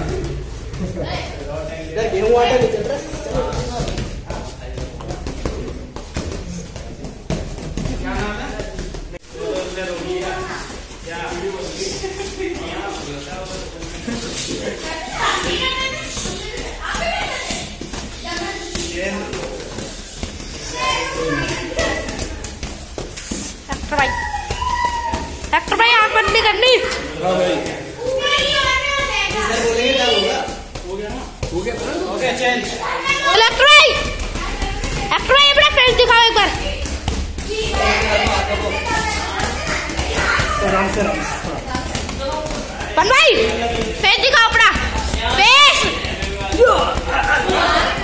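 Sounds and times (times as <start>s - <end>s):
voices in a hall: 0.0s - 48.0s.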